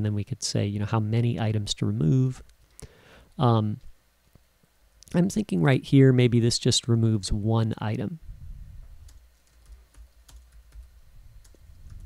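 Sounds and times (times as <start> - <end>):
faint low rumble: 8.2 - 9.8.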